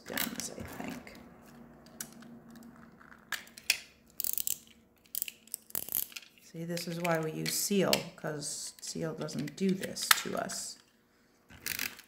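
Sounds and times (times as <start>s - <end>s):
adhesive tape clicks and rasps: 3.3s - 6.4s.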